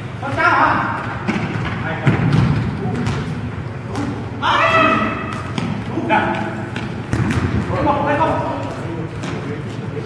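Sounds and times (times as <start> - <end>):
ball thudding on gym floor: 0.3 - 4.2, 5.2 - 5.9, 6.7 - 7.7
man shouting: 4.4 - 5.3.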